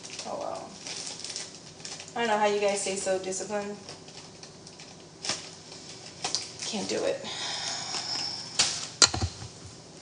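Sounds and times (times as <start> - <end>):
object knocked down on hard surface: 9.0 - 9.6.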